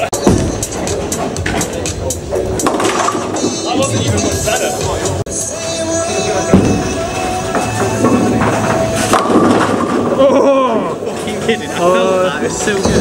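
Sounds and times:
music with singing: 0.0s - 10.2s
bowling alley ambience: 0.0s - 13.0s.

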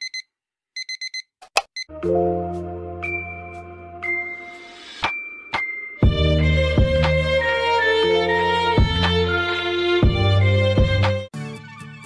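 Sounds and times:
alarm clock beeping: 0.0s - 1.9s.

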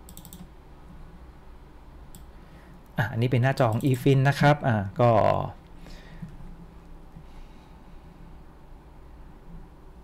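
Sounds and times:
computer keyboard keystrokes: 0.0s - 0.5s.

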